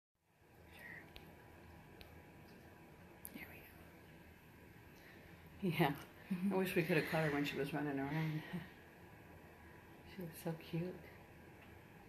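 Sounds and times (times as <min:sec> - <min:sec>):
faint whispering: 0:00.6 - 0:01.3, 0:03.2 - 0:04.0.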